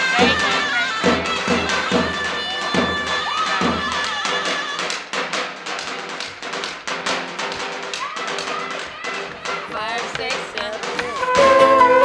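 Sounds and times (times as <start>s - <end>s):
deep drum beats: 0.0s - 12.0s
shawm melody: 0.0s - 12.0s.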